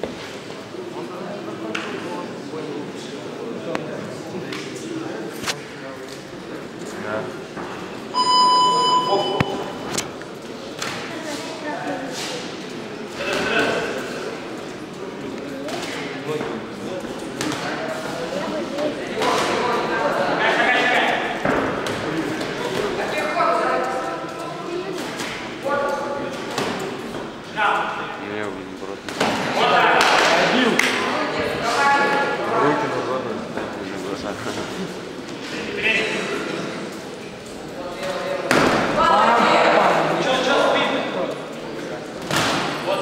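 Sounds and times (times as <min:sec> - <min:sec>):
electronic ring buzzer: 0:08.2 - 0:09.7.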